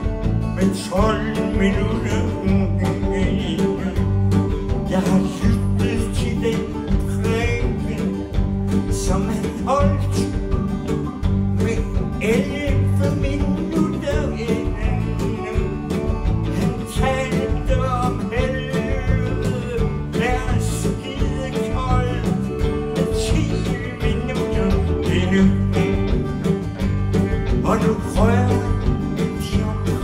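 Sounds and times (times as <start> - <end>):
live band playing: 0.0 - 30.0.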